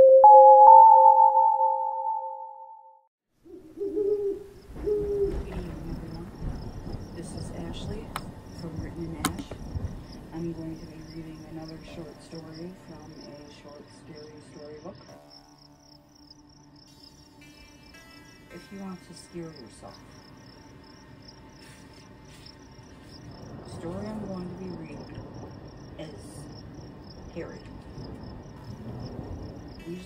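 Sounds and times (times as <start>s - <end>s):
owl hooting: 3.4s - 5.4s
crickets chirping: 3.5s - 30.0s.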